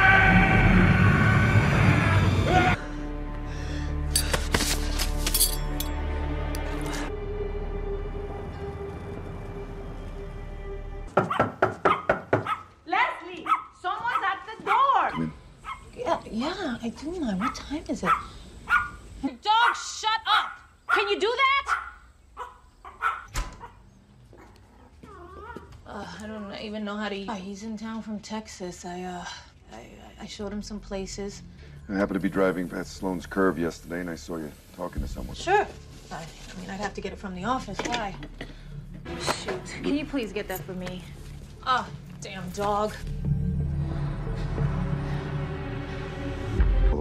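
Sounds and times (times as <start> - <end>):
low film score: 0.0 - 47.0
dog yapping: 11.2 - 12.7, 13.4 - 15.9, 17.4 - 19.0, 19.6 - 23.8.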